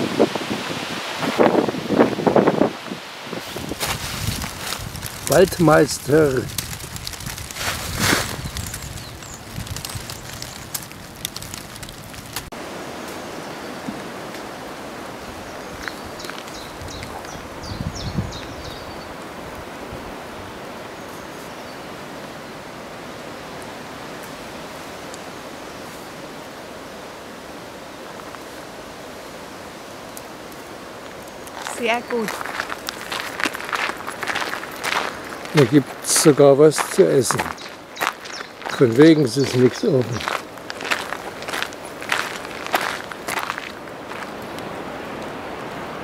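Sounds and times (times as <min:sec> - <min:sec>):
strong wind through trees: 0:00.0 - 0:46.0.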